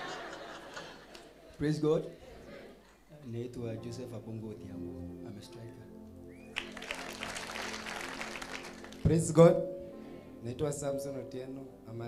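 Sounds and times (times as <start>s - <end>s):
soft background music: 3.2s - 12.0s
crowd applauding: 6.4s - 9.4s.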